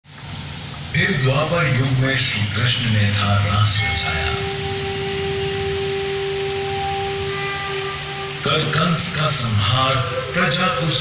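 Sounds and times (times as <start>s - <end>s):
steady hiss: 0.0s - 11.0s
held musical note: 3.2s - 11.0s.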